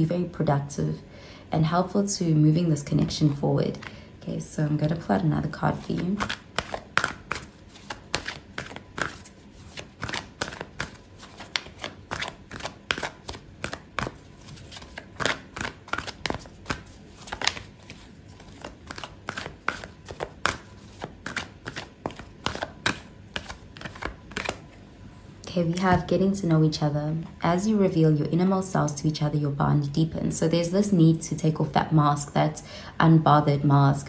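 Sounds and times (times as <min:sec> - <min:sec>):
cards being shuffled: 0:05.7 - 0:24.8.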